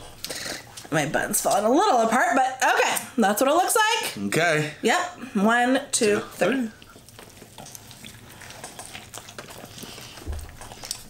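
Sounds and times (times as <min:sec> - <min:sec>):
people chewing food: 0:00.0 - 0:02.0, 0:06.0 - 0:11.0
wet crackling mouth clicks: 0:06.9 - 0:11.0.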